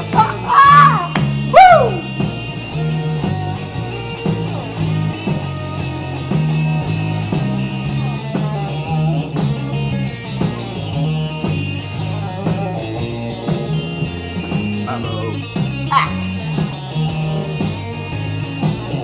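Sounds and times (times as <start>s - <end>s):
electric lead guitar: 0.0s - 19.0s
shuffle bass line: 0.0s - 19.0s.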